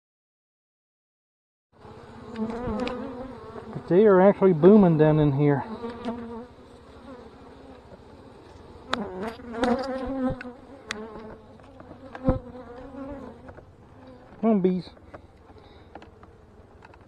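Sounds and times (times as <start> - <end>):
honey bees buzzing: 1.8 - 17.0.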